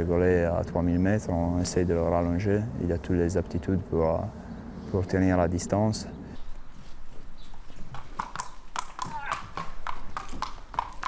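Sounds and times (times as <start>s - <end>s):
horse hooves on concrete: 6.4s - 11.0s.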